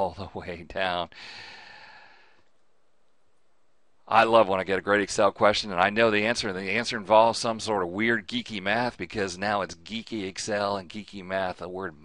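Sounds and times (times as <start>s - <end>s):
man sighing: 1.1s - 2.4s.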